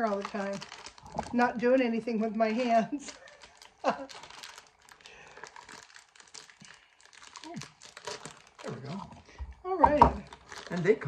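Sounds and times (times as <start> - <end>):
plastic film crinkling: 0.0 - 11.0
scissors cutting plastic bag: 2.9 - 5.0, 5.6 - 9.0.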